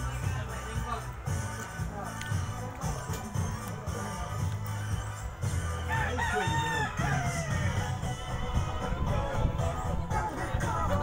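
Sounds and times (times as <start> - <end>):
background music with bass: 0.0 - 11.0
rooster crowing: 5.9 - 8.1.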